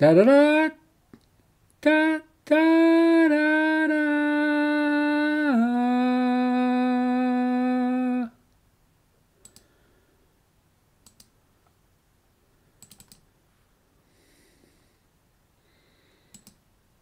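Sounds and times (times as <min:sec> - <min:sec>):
man singing unaccompanied: 0:00.0 - 0:00.9, 0:01.8 - 0:08.4
faint paired clicks: 0:09.4 - 0:09.7, 0:16.3 - 0:16.6.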